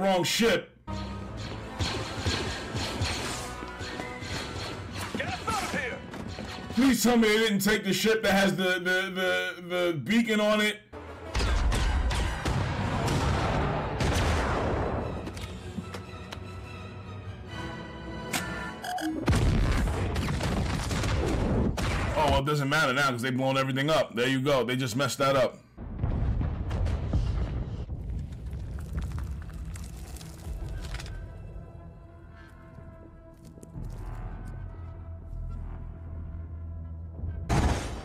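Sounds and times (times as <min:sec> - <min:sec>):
dramatic score music: 0:00.8 - 0:07.6, 0:10.9 - 0:22.0, 0:29.8 - 0:38.0
orchestral score: 0:11.0 - 0:19.2
explosions with deep rumble: 0:11.4 - 0:15.2, 0:19.3 - 0:22.2, 0:25.8 - 0:30.8
low explosion rumble: 0:25.8 - 0:30.8.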